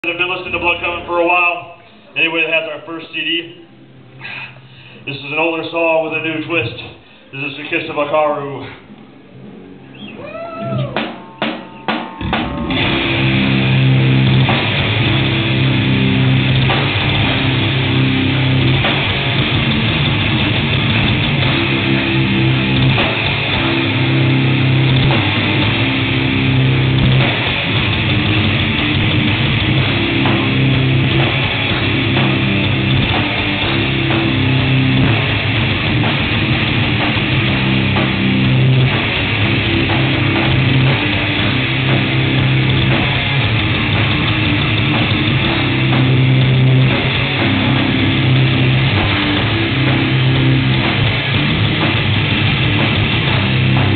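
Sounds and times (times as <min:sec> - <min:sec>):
drum kit: 0:00.0 - 0:03.2, 0:10.1 - 0:53.9
bass guitar: 0:00.0 - 0:53.9
distorted electric guitars: 0:00.0 - 0:53.9.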